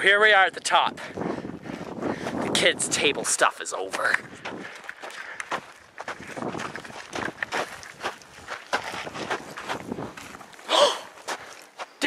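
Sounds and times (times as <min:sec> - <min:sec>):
footsteps crunching on gravel: 0:01.6 - 0:12.0.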